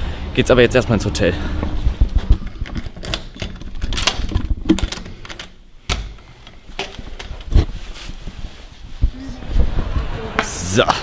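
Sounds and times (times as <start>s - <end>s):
key rattling in lock: 2.4s - 5.6s.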